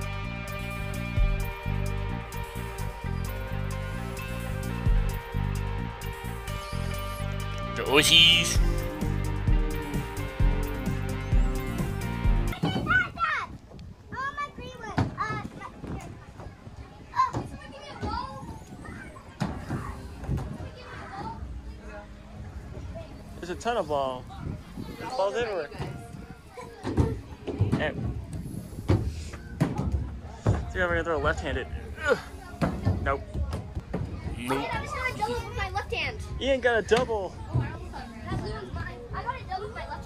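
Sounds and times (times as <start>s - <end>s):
background music: 0.0s - 12.6s.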